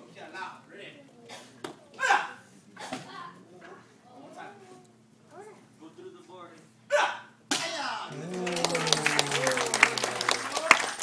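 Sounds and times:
person shouting: 8.1 - 10.5
crowd cheering and clapping: 8.1 - 11.0
long low cheer: 8.1 - 11.0.

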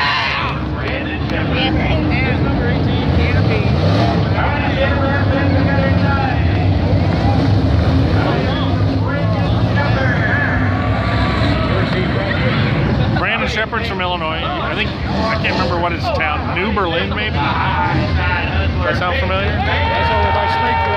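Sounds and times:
race car engines: 0.0 - 20.9.

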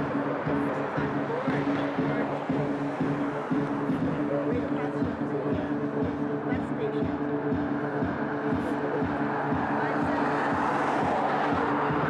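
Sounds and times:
electronic music with steady beat: 0.0 - 12.0.

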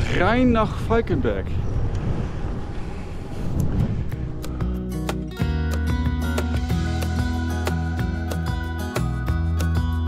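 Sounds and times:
wind rumble on microphone: 0.0 - 4.8
music with plucked guitar: 4.5 - 10.0.

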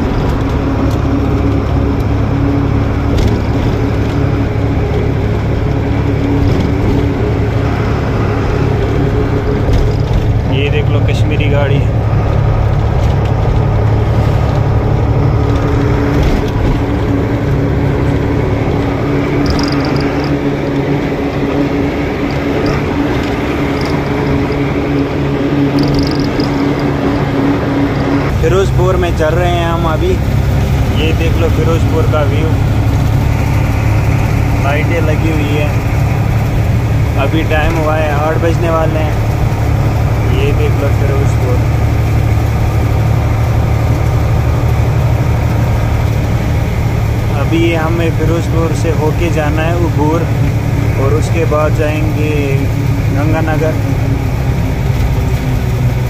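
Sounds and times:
truck engine and road drone: 0.0 - 56.0
person speaking: 10.4 - 12.2.

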